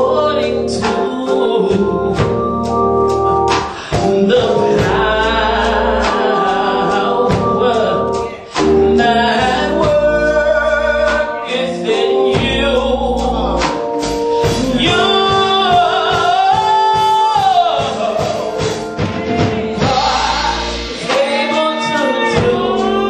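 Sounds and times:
woman singing gospel: 0.0 - 2.8, 3.4 - 23.0
instrumental accompaniment: 0.0 - 23.0.

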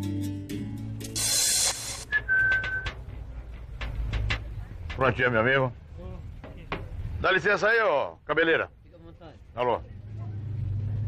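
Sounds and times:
background music: 0.0 - 1.4
burst of hissing: 1.1 - 2.2
steady whistle note: 2.0 - 2.9.

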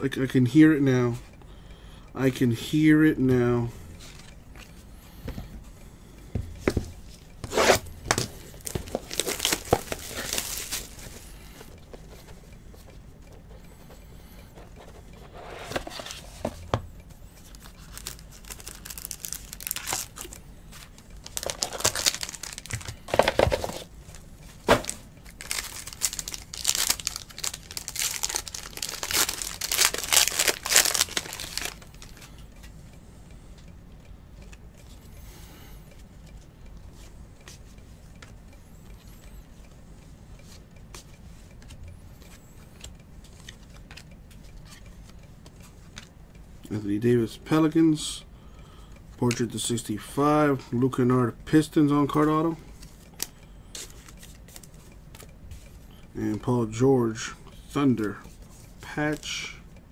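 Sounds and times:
foil wrappers tearing and crinkling: 8.6 - 11.0, 17.6 - 20.4, 21.2 - 23.1, 24.8 - 32.0.

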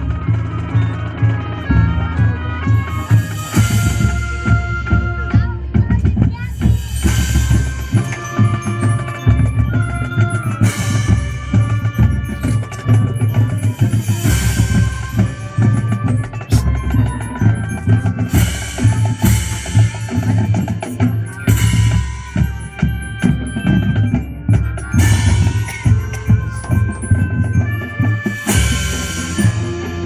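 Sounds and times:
drumline and percussion: 0.0 - 30.0
wind and brass chords: 0.0 - 30.0.

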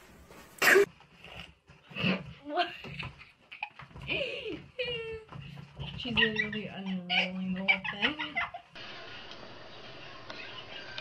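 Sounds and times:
cough-like burst: 0.6 - 0.9.

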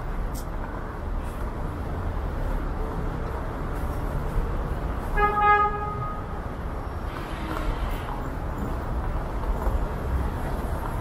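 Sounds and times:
street traffic rumble: 0.0 - 11.0
vehicle horn honk: 5.2 - 6.2.

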